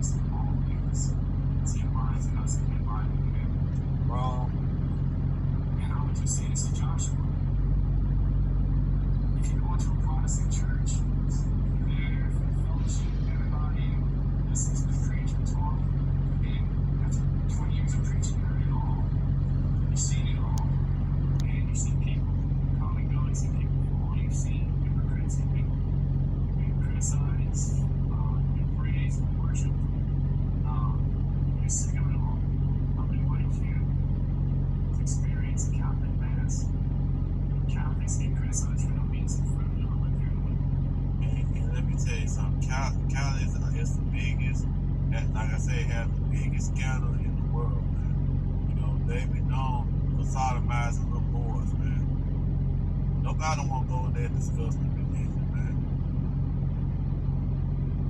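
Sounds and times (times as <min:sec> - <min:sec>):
low hum: 0:00.0 - 0:58.0.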